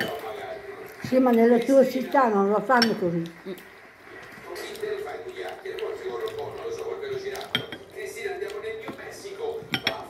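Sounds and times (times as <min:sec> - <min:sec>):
cutlery clinking on ceramic plate: 0:00.0 - 0:00.4, 0:02.8 - 0:03.0, 0:06.2 - 0:10.0.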